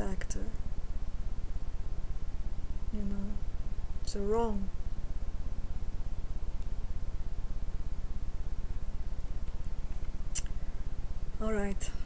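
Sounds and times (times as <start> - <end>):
low pulsing buzzing hum: 0.0 - 12.0.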